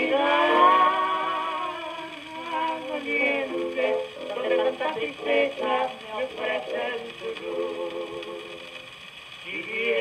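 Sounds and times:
gramophone playing sung tango: 0:00.0 - 0:10.0.

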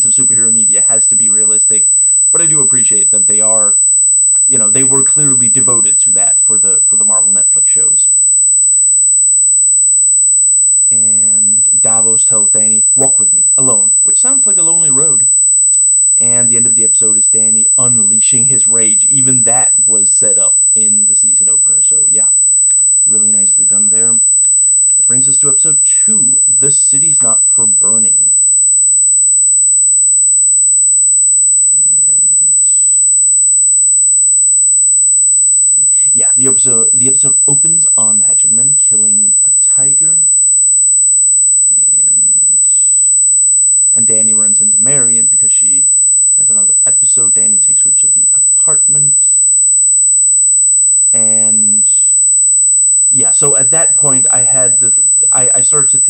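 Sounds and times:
man talking: 0:00.0 - 0:03.8, 0:04.5 - 0:08.0, 0:10.9 - 0:15.3, 0:16.2 - 0:22.5, 0:23.1 - 0:24.3, 0:25.1 - 0:28.2, 0:36.0 - 0:40.4, 0:44.0 - 0:49.2, 0:51.1 - 0:52.0, 0:53.1 - 0:56.0
piercing high-pitched tone: 0:00.0 - 0:56.0
steady high-pitched whine: 0:00.0 - 0:56.0.

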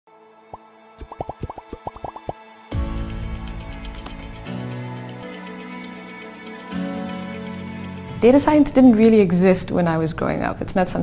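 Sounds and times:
short rising bloop pops: 0:01.0 - 0:02.4.

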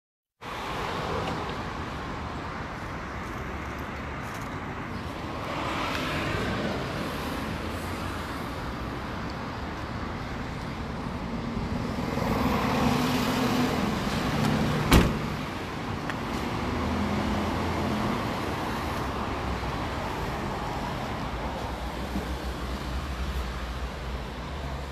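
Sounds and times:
road traffic noise: 0:00.4 - 0:24.9
sharp thump: 0:14.9 - 0:15.3.

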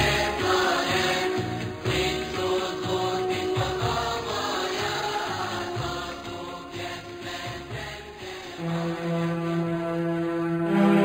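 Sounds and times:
instrumental pop music: 0:00.0 - 0:10.1.

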